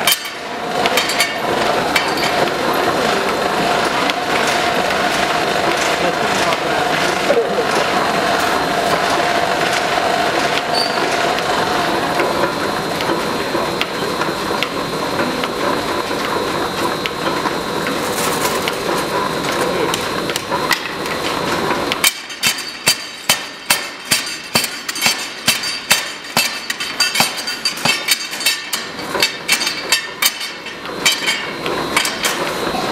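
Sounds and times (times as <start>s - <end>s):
power hammer clatter: 0.0s - 32.9s
ringing metal-on-metal blows: 22.1s - 32.3s.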